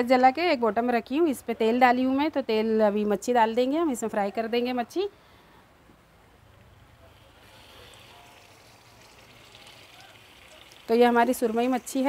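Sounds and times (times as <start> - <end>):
fish sizzling in hot oil: 7.1 - 12.0.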